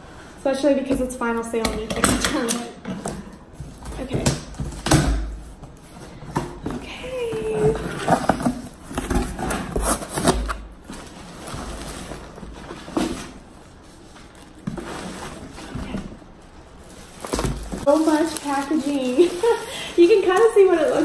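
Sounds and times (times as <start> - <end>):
plastic packaging crinkling: 7.7 - 21.0.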